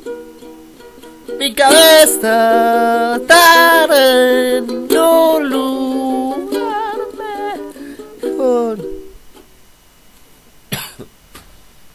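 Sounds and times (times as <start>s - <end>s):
ukulele: 0.0s - 9.5s
faint hiss: 0.0s - 11.9s
person singing: 1.2s - 9.1s
person coughing: 10.7s - 11.1s.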